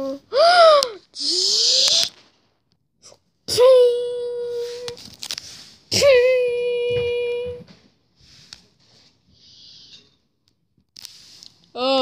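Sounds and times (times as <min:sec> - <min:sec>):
rustling of toy figures: 0:04.3 - 0:09.4, 0:10.8 - 0:12.0.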